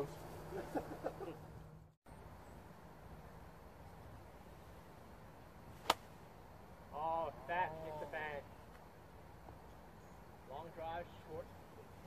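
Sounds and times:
faint outdoor background: 0:00.0 - 0:12.0
golf club striking ball: 0:05.8 - 0:06.1.

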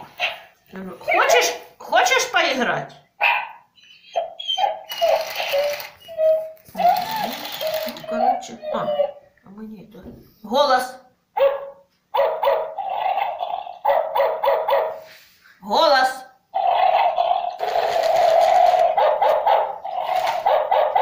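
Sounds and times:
toy dog barking through speaker: 0:04.2 - 0:09.1, 0:11.4 - 0:15.0, 0:16.6 - 0:21.0.

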